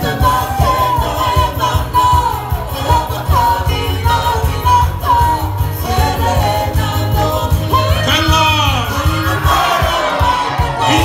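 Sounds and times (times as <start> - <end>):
congregation singing and calling out: 0.0 - 11.0.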